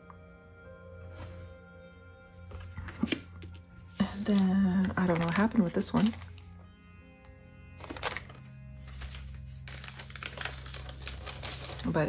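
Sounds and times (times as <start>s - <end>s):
background music with held tones: 0.0s - 12.0s
paper postcard taps and rustles: 2.5s - 6.4s, 7.8s - 12.0s.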